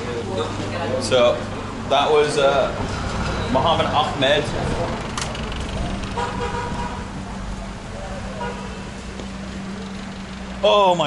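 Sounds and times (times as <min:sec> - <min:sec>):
faint voices: 0:00.0 - 0:11.0
traffic engine hum: 0:00.0 - 0:11.0
car horn: 0:06.1 - 0:07.2, 0:08.3 - 0:09.0.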